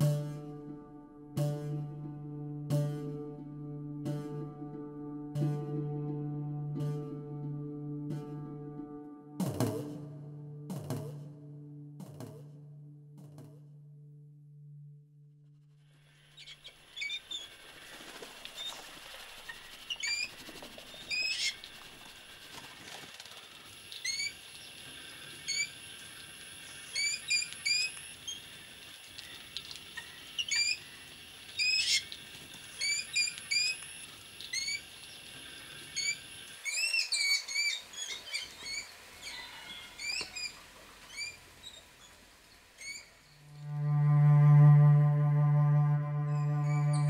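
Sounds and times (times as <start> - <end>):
birds chirping squeakily: 19.8 - 21.6, 36.0 - 42.2, 42.8 - 43.1.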